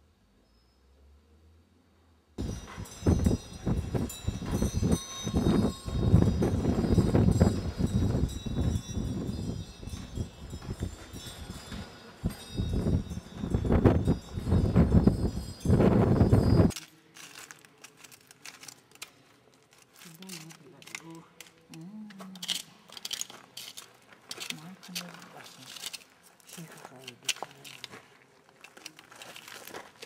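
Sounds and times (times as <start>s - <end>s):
wind buffeting microphone: 2.4s - 16.7s
small bells ringing: 2.4s - 17.6s.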